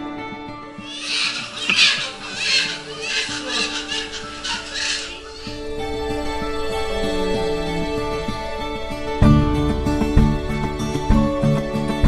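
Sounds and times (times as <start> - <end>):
newborn baby crying: 0.8 - 5.6.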